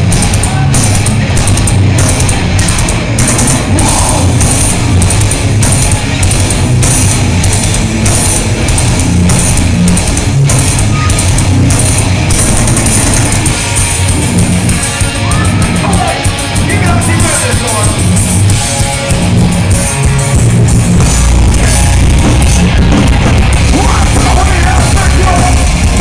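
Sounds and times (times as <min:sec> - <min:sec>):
heavy metal band playing live: 0:00.0 - 0:26.0.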